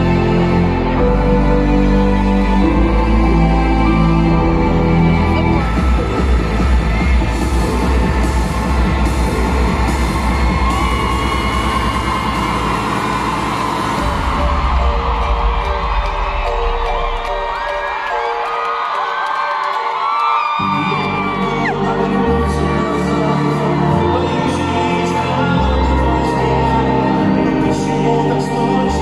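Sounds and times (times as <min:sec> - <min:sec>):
loud live music with bass beat: 0:00.0 - 0:19.3, 0:19.9 - 0:29.0
audience cheering and whooping: 0:05.3 - 0:22.3.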